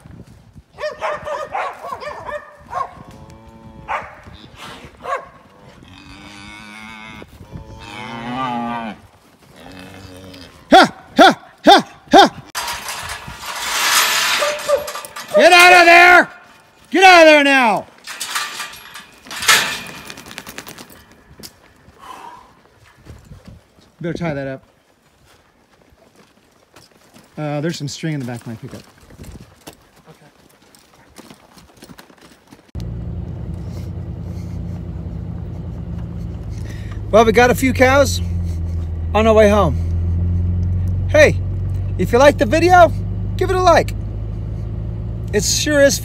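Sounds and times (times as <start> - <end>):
cattle mooing and bawling: 3.1 - 4.6, 5.6 - 10.9.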